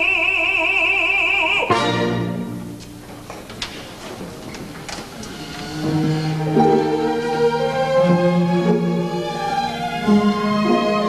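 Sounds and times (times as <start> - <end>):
orchestra strings holding notes: 1.6 - 3.2, 4.1 - 11.0
footsteps on wooden stage: 2.6 - 6.4.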